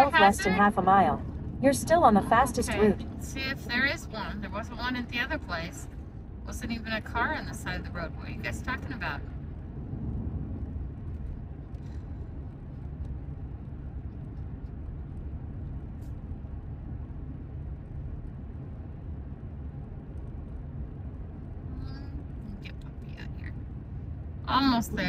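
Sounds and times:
car road and engine noise: 0:00.0 - 0:25.0.

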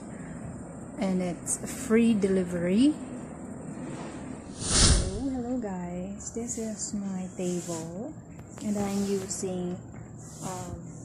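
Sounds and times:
woman speaking: 0:01.0 - 0:03.0, 0:05.0 - 0:11.0
short breathy hiss: 0:03.9 - 0:05.2.

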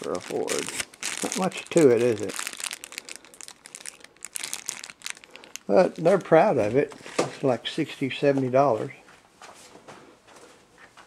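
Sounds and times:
plastic bag crinkling: 0:00.0 - 0:07.6.

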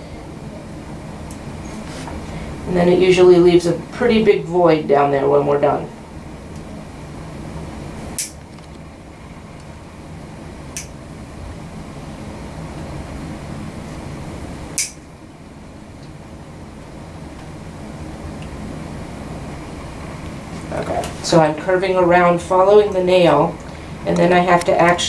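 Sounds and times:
steady low hum: 0:00.0 - 0:25.0
nail nippers snipping: 0:14.8 - 0:15.0.

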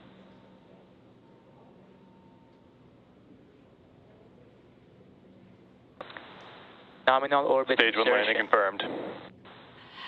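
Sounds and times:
radio click: 0:06.0 - 0:06.8
narrow-band radio hiss: 0:06.0 - 0:10.0.

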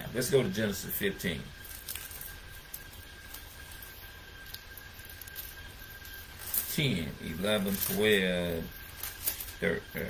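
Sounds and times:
faint whine: 0:00.0 - 0:10.0
low hum: 0:00.0 - 0:10.0
pages turning: 0:01.6 - 0:09.7.

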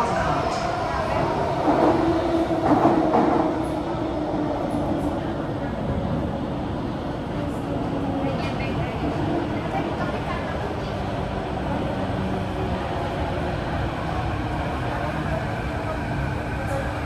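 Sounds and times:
steady hum inside metro car: 0:00.0 - 0:17.0
voices: 0:00.0 - 0:17.0.

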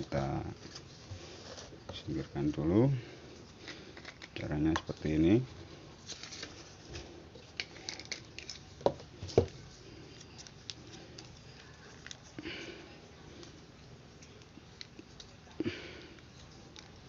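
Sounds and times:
plastic clicks and rustles: 0:07.6 - 0:09.6.

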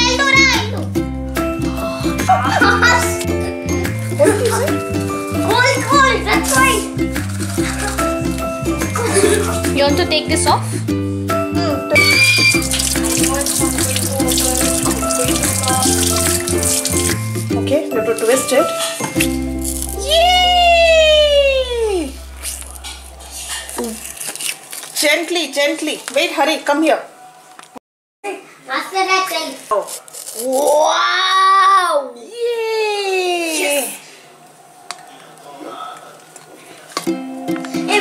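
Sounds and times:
sliding note: 0:19.2 - 0:25.0
held low tone: 0:20.0 - 0:24.6.

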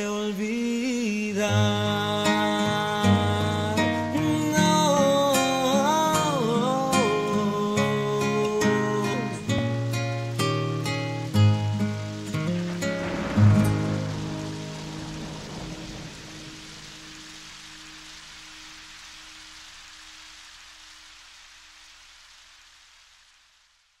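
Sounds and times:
acoustic guitar chords: 0:00.0 - 0:17.3
steady rain-like hiss: 0:00.0 - 0:24.0.

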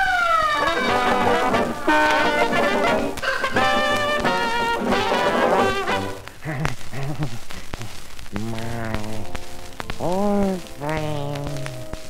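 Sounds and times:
dance band with brass: 0:00.4 - 0:06.3.

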